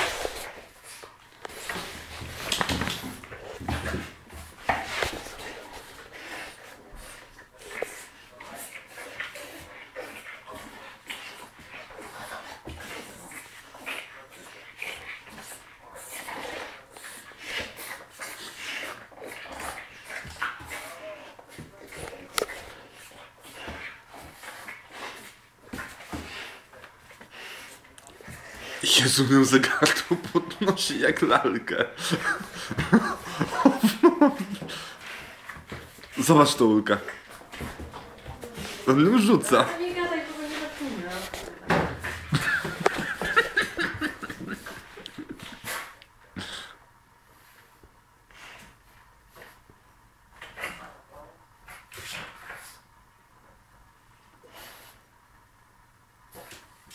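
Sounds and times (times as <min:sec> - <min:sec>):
dogs growling and vocalizing: 0:00.0 - 0:30.9, 0:31.8 - 0:36.2, 0:39.6 - 0:46.8
person laughing: 0:29.7 - 0:30.9, 0:32.0 - 0:34.7, 0:42.3 - 0:45.6.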